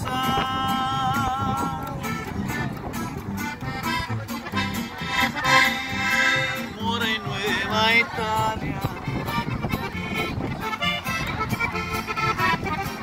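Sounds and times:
acoustic guitar: 0.0s - 13.0s
button accordion melody: 0.0s - 13.0s
upright bass: 0.0s - 13.0s.

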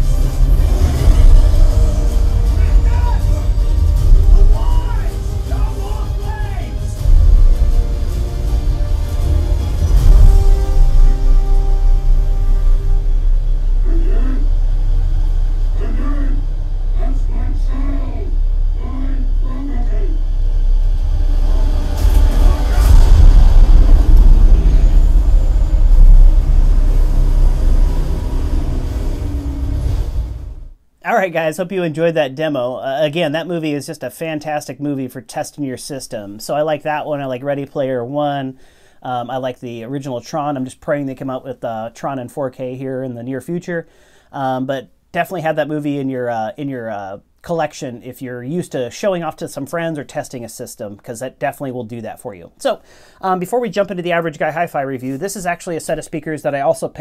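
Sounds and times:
action film music over speakers: 0.0s - 30.8s
deep subwoofer bass: 0.0s - 30.8s.

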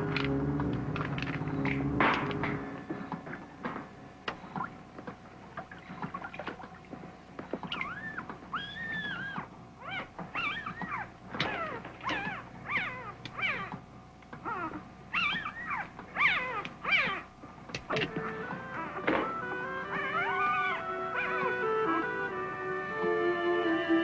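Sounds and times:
puppy whimpering and squealing: 7.6s - 13.8s, 14.4s - 17.3s, 19.9s - 21.5s.

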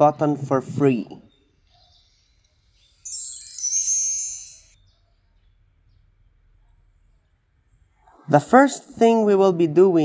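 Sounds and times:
high-pitched hiss with ringing tones: 1.9s - 4.9s.

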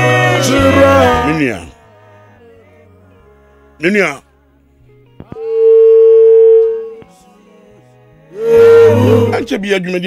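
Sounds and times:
gospel voice holding long note: 0.0s - 9.8s
faint low music: 0.0s - 10.0s.

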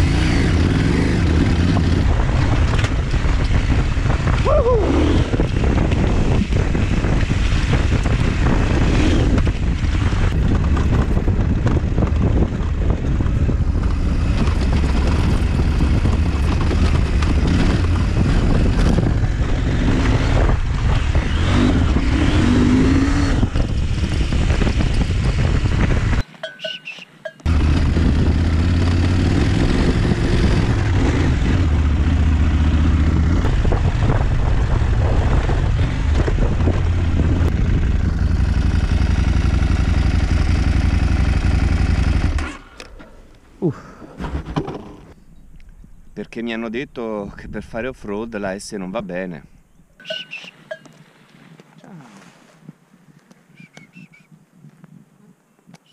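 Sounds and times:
motorcycle engine riding off-road: 0.0s - 46.3s.

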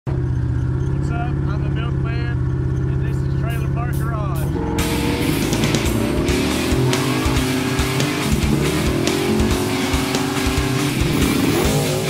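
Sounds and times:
car engine droning inside cabin: 0.1s - 12.0s.

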